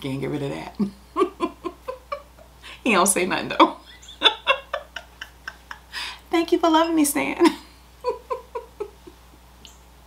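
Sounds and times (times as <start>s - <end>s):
woman laughing softly: 3.8s - 6.1s, 7.4s - 9.4s.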